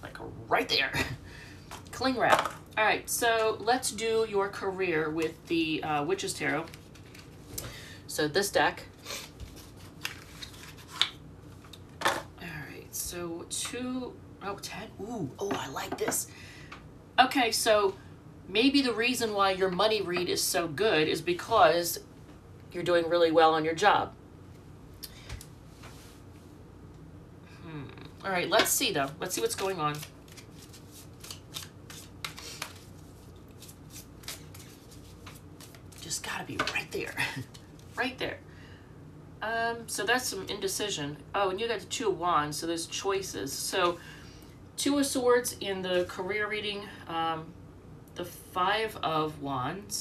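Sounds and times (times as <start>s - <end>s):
cards sliding and rustling: 9.2s - 11.2s, 29.5s - 36.0s
cards snapping: 29.6s - 32.9s, 33.6s - 35.8s.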